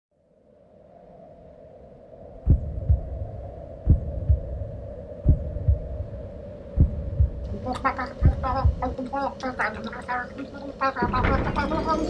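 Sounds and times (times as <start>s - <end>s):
slow heartbeat: 2.4s - 9.1s.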